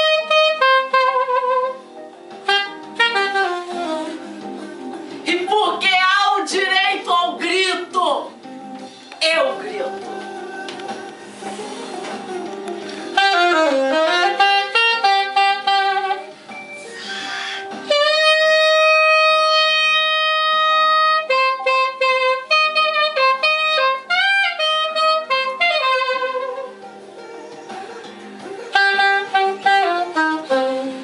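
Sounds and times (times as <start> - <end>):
saxophone holding high note: 0.0 - 4.3, 13.1 - 26.8, 28.7 - 31.0.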